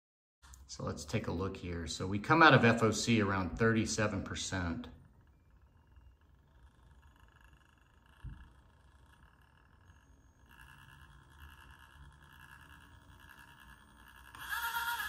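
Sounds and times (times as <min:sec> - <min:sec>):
high whine of electric motor: 0:02.0 - 0:15.0.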